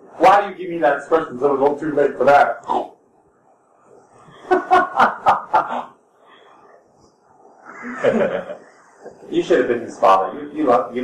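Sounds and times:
person laughing: 4.3 - 5.9, 7.8 - 8.7.

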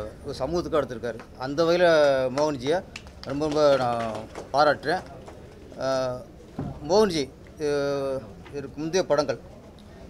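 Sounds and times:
man talking: 5.8 - 9.4.

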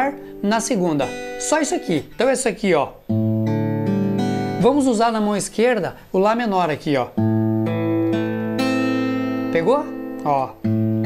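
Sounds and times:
acoustic guitar fingerpicking: 0.0 - 11.0.

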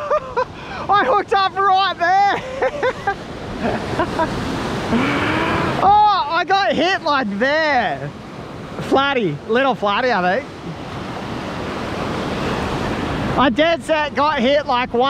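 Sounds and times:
surf washing up beach: 0.0 - 15.0
excited wordless shouting: 0.9 - 2.4, 5.2 - 8.1.

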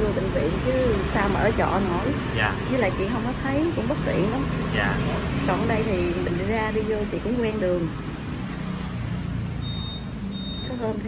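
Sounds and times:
high electronic beeps: 9.6 - 11.0.

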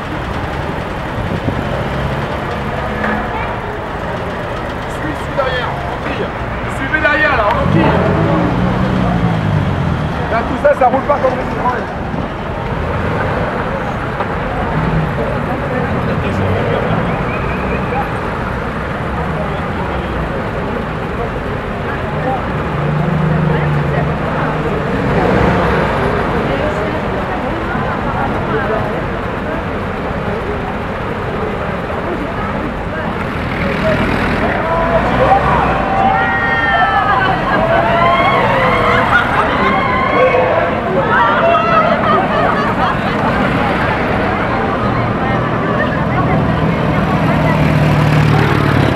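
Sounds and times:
crowd chatter: 0.0 - 48.9
military vehicle engines running: 0.0 - 48.9.

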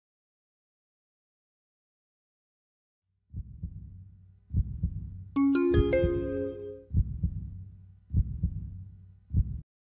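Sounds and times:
heartbeat thumps: 3.3 - 6.3, 6.9 - 9.6.

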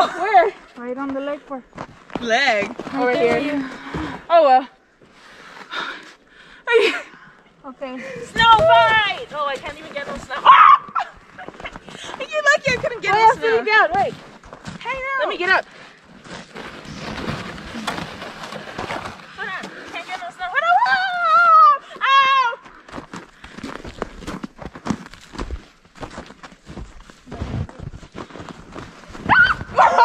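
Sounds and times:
crunches in packed snow: 8.0 - 21.2, 21.8 - 30.0
people shouting and squealing: 10.3 - 11.2, 29.2 - 30.0.

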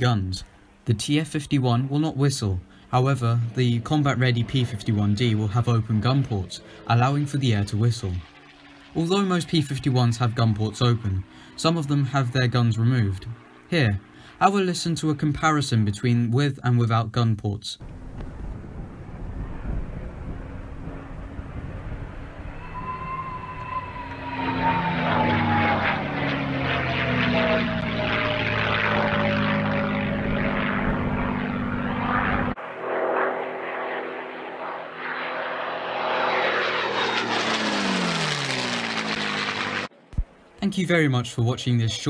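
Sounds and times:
propeller plane engine: 0.0 - 16.0, 17.8 - 40.6
plane engine passing by: 0.0 - 16.3, 17.8 - 40.6
whistle falling in pitch: 22.5 - 25.8.

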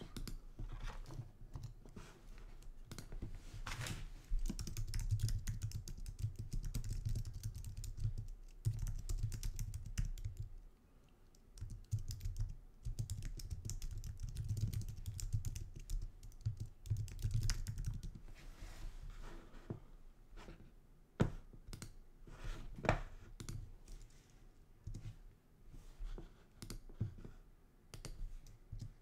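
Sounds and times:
computer keyboard typing: 0.1 - 0.4, 2.9 - 3.1, 4.4 - 10.5, 11.3 - 18.2.

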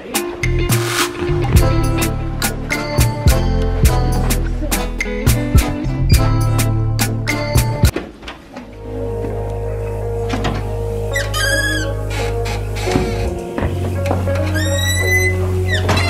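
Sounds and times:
sustained bass line: 0.4 - 7.9, 8.8 - 14.5.

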